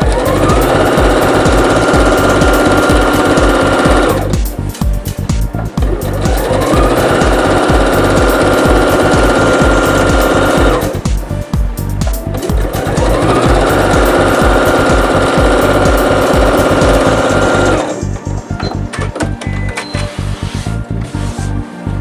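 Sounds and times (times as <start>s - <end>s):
electric sewing machine stitching: 0.0s - 4.4s, 5.8s - 11.0s, 12.4s - 18.0s.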